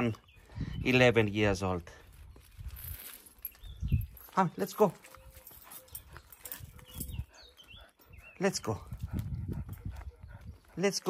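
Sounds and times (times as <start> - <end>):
metal chain clinking: 2.1 - 7.4.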